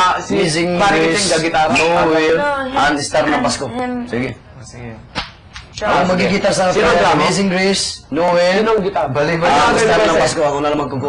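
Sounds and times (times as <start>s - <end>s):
person speaking: 0.2s - 5.1s.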